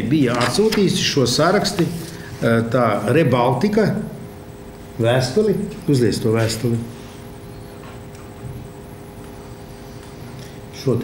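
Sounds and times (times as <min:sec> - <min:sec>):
room hum: 0:00.0 - 0:11.0
faint wavering high-pitched whine: 0:00.9 - 0:11.0.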